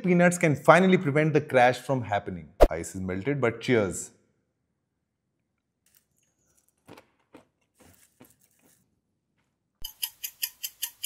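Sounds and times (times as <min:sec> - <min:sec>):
peanuts being chewed: 0:05.8 - 0:08.9.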